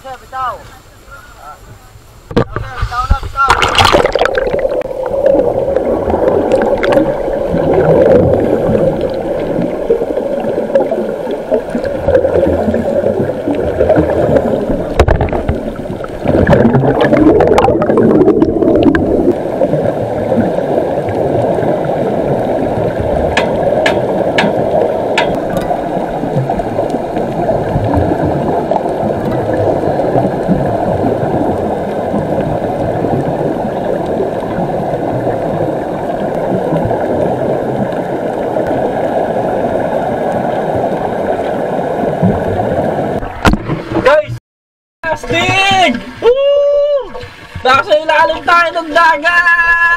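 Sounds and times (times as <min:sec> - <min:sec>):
muffled underwater rushing: 0:00.6 - 0:44.4.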